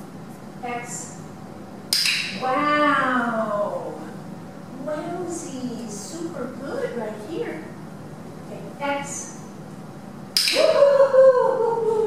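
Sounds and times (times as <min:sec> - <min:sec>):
sharp click: 0:01.9 - 0:02.4, 0:10.4 - 0:10.7.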